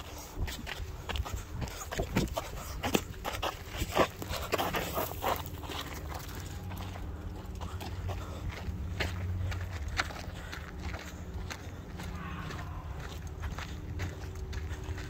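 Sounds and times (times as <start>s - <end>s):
footsteps on dirt trail: 0.0s - 15.0s.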